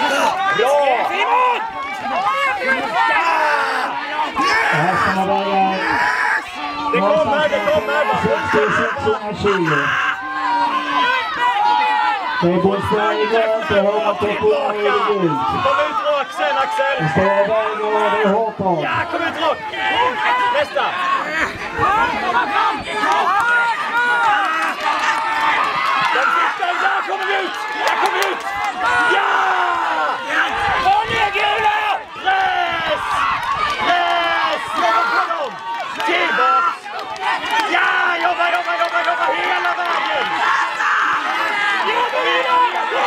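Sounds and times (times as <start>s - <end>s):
crowd cheering: 0.0s - 43.0s
voices shouting encouragement: 0.0s - 43.0s.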